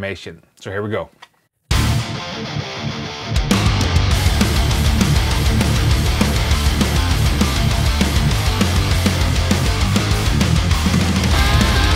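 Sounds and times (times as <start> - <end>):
heavy metal music: 1.7 - 11.9.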